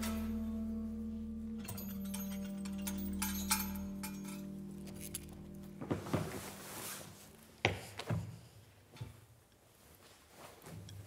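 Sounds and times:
soft background music: 0:00.0 - 0:08.0
light metallic clinks: 0:01.6 - 0:05.4.

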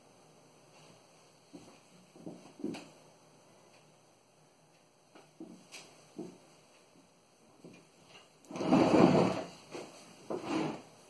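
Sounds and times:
chair rustle and scrape: 0:08.1 - 0:10.9.

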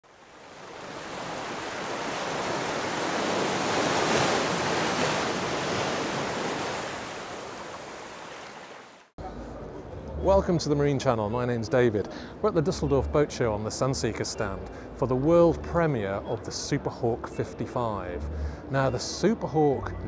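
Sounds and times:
low hum of exhibition hall: 0:09.2 - 0:20.0.

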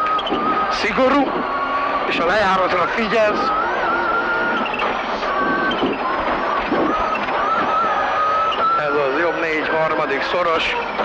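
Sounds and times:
rally car engine running hard: 0:00.2 - 0:11.0.

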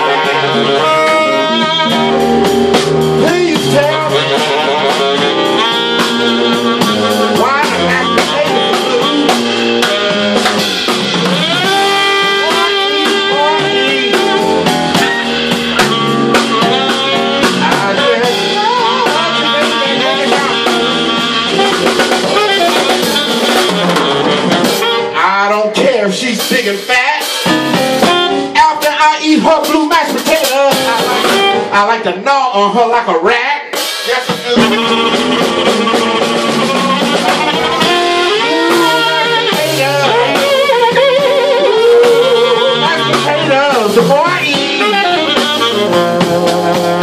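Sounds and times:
fretless electric bass: 0:00.0 - 0:26.0, 0:34.4 - 0:47.0
drum kit with cymbals: 0:00.0 - 0:32.1, 0:33.3 - 0:47.0
bending melodic lead line: 0:00.0 - 0:32.3, 0:34.2 - 0:47.0
keyboards: 0:00.0 - 0:32.4, 0:33.8 - 0:47.0.

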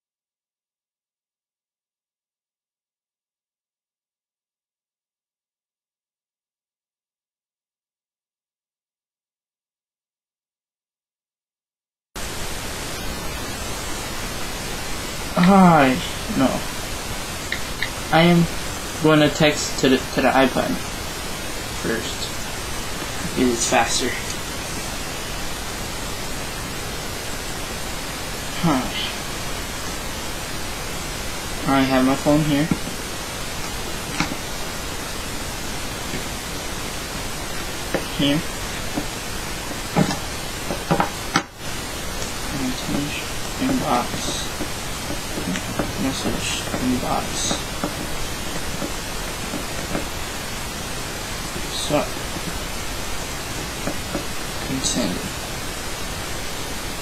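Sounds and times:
steady hiss: 0:12.2 - 0:57.0
person saying huh: 0:15.4 - 0:16.6.

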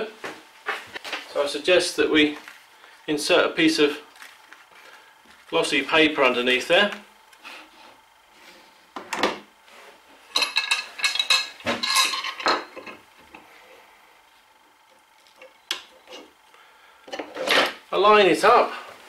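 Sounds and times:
metal clamps clinking and knocking: 0:10.3 - 0:13.0.

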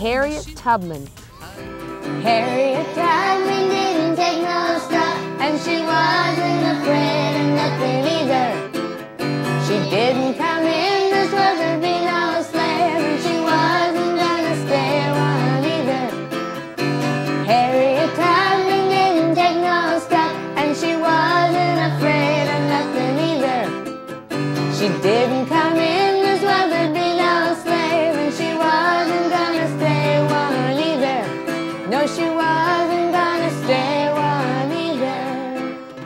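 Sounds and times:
strummed acoustic guitar: 0:00.0 - 0:36.0
woman and children singing: 0:02.2 - 0:08.7, 0:09.6 - 0:16.6, 0:17.4 - 0:23.8, 0:24.7 - 0:35.8.

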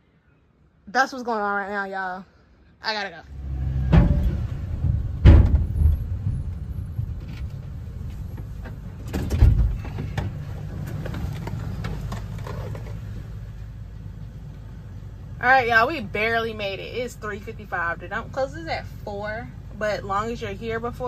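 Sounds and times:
truck engine running: 0:03.3 - 0:21.0
dull knocks: 0:03.9 - 0:07.7.

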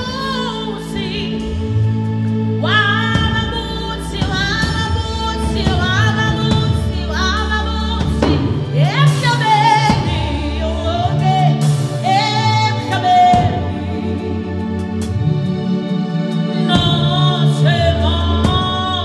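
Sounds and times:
woman singing gospel song: 0:00.0 - 0:02.0, 0:02.6 - 0:15.2, 0:16.5 - 0:19.0
sustained instrumental backing: 0:00.0 - 0:19.0.

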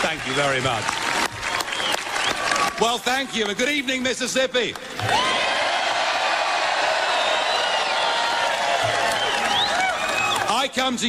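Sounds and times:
crowd cheering and whooping: 0:00.3 - 0:03.2, 0:05.0 - 0:10.6.

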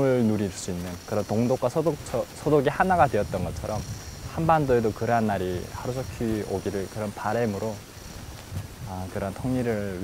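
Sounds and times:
man speaking: 0:00.0 - 0:07.8, 0:08.8 - 0:10.0.

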